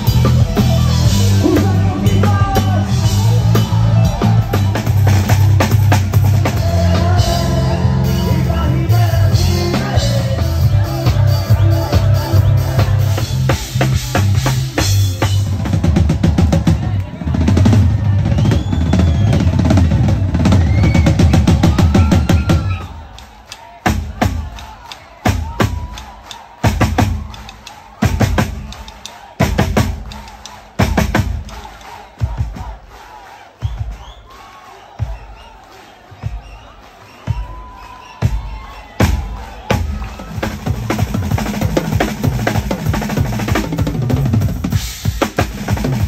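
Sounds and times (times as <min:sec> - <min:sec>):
live band playing loud: 0:00.0 - 0:34.0, 0:34.9 - 0:46.0
drum kit playing alone: 0:00.0 - 0:34.2, 0:36.2 - 0:46.0.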